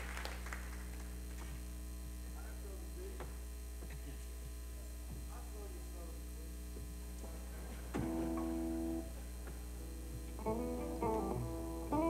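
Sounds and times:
amplifier electrical hum: 0.0s - 12.0s
guitar chord ringing: 8.0s - 9.1s, 9.8s - 12.0s.

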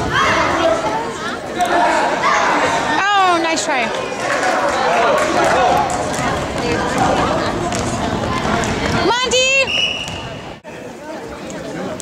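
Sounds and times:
crowd voices: 0.0s - 12.0s
referee whistle blast: 9.6s - 10.4s.

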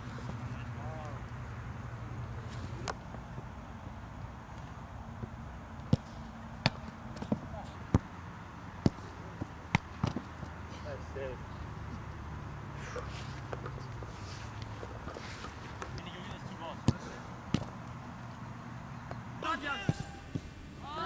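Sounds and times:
soccer balls kicked hard: 5.8s - 8.1s, 8.8s - 10.4s, 15.9s - 17.8s.

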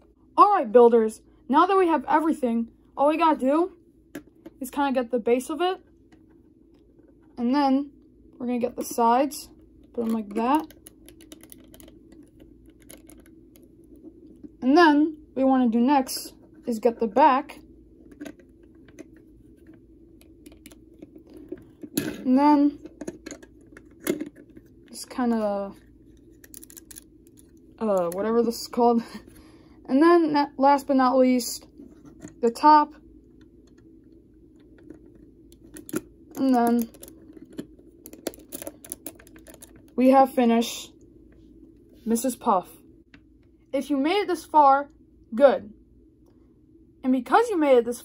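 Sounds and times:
plastic bricks clicking: 26.4s - 27.1s, 34.8s - 39.8s.

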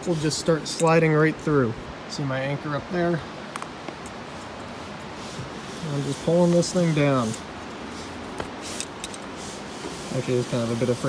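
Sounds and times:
rope sliding through belay device: 4.2s - 11.0s.

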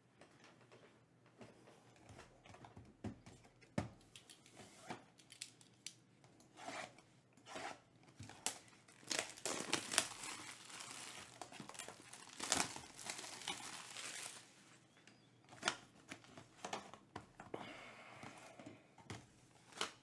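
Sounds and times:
plastic wrap rustling and clicking: 4.0s - 6.0s, 8.1s - 17.1s
plastic wrap crinkling: 8.3s - 14.9s.

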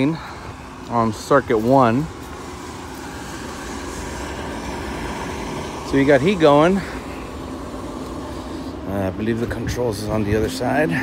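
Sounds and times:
rooftop heating unit rumbling: 0.0s - 11.0s.

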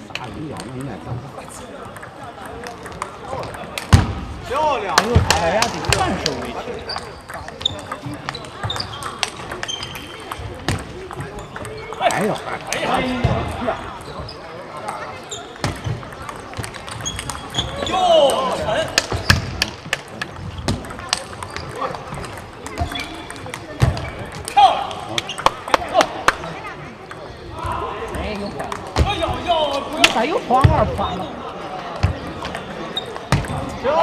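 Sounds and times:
voices speaking: 20.8s - 31.6s.

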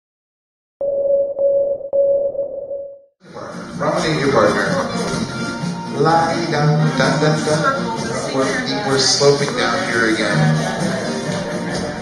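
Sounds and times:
electronic tone: 0.8s - 3.1s
square-dance music: 3.5s - 12.0s.

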